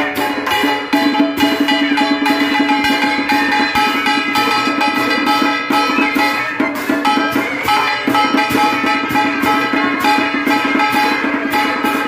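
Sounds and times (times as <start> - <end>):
drum strokes: 0.0 - 12.0.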